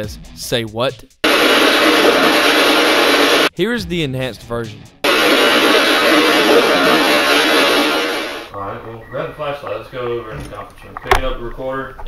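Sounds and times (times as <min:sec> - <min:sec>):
radio static hiss: 0:01.2 - 0:03.5, 0:05.0 - 0:08.5.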